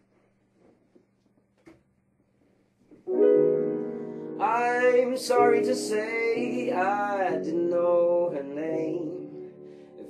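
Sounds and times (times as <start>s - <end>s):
piano chord ringing: 3.1s - 10.0s.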